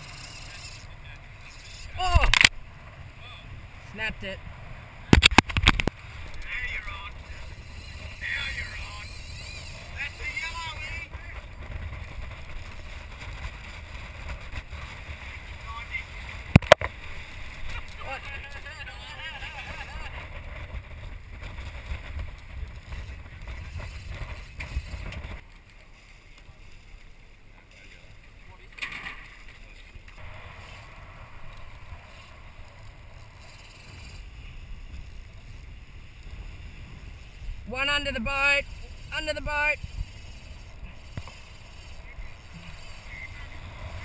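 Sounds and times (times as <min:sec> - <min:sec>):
water rushing along boat hull: 0:00.0 - 0:44.0
wind buffeting microphone: 0:01.0 - 0:25.4, 0:30.2 - 0:44.0.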